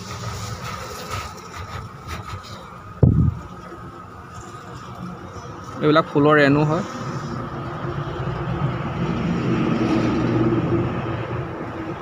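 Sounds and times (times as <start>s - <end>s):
honeybees buzzing: 0.0s - 7.9s.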